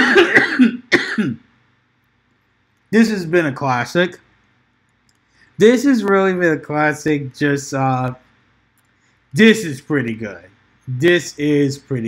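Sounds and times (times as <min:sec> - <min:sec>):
man coughing: 0:00.0 - 0:01.4.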